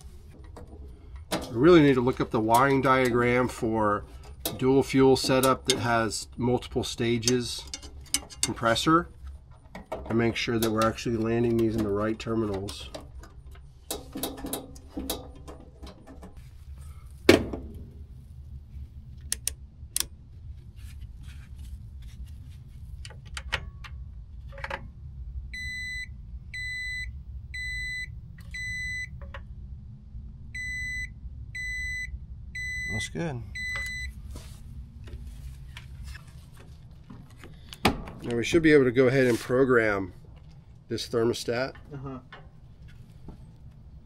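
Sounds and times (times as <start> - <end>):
clamp meter beeping: 25.6 - 29.2, 30.6 - 34.2.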